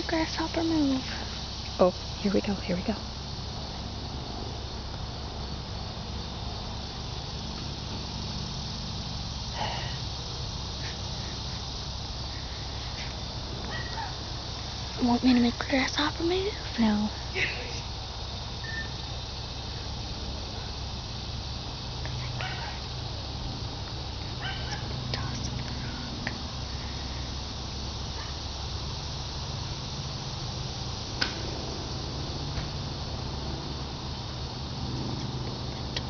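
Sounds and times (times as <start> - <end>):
low hum: 0.0 - 36.0
outdoor background hiss: 0.0 - 36.0.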